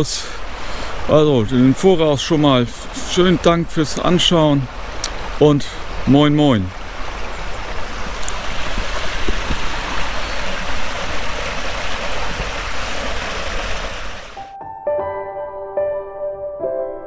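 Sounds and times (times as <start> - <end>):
stream rushing under bridge: 0.0 - 14.4
soft instrumental music: 14.4 - 17.0.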